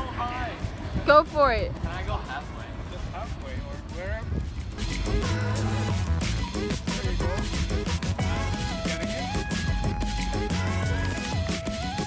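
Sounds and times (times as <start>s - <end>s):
music with held notes and deep bass: 4.6s - 12.0s.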